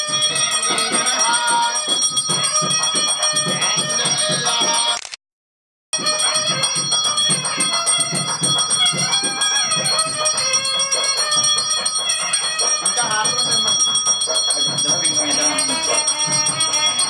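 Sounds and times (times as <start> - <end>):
bell ringing continuously: 0.0 - 5.0, 6.0 - 17.0
wavering devotional melody: 0.0 - 5.0, 6.0 - 17.0
regular drum beat: 6.0 - 17.0.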